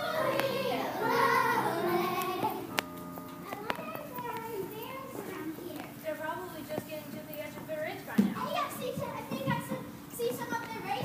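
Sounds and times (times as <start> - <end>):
quiet children's voices: 0.0 - 2.8, 3.4 - 6.9, 8.2 - 11.0
children singing with music: 0.0 - 5.3.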